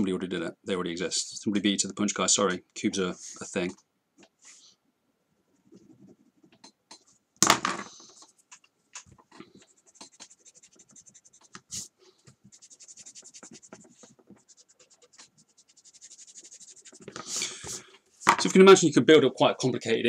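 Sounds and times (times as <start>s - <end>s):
pencil scratching on paper: 9.5s - 17.4s.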